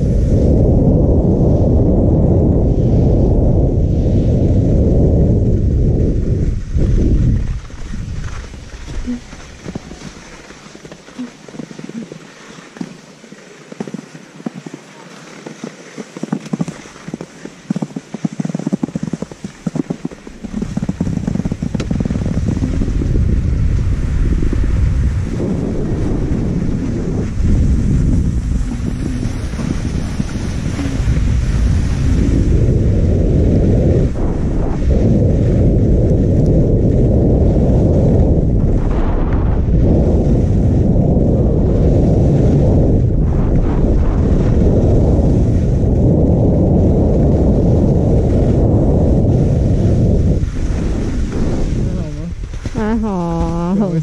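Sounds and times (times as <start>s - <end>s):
wind buffeting microphone: 0.0s - 54.0s
skis sliding on snow: 3.8s - 54.0s.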